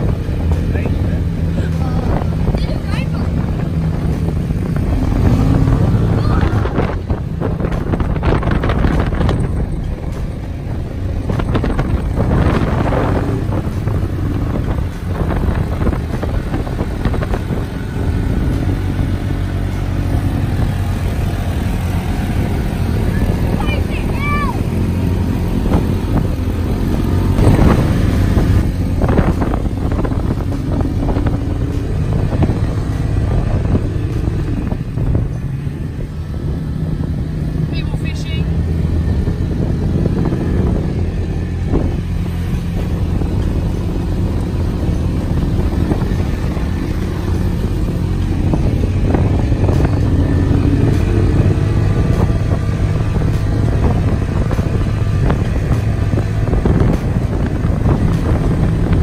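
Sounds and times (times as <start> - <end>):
buggy engine running: 0.0 - 59.0
quad bike engines: 0.0 - 59.0.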